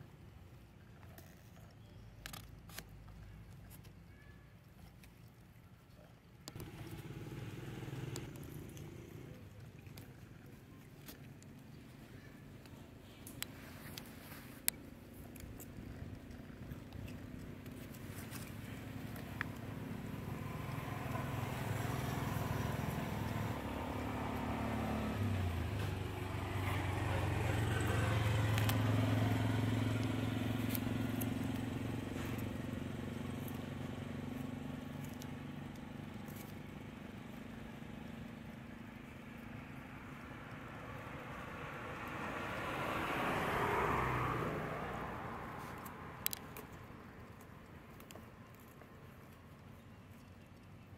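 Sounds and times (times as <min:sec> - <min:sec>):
motor vehicles passing: 0:06.1 - 0:50.9.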